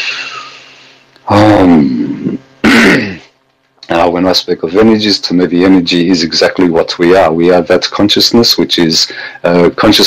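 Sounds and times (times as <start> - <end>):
man sighing: 1.3 - 3.3
man clearing throat: 1.3 - 3.4.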